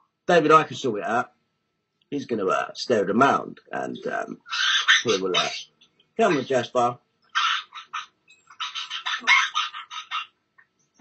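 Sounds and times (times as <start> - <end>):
bird squawking: 4.3 - 10.4.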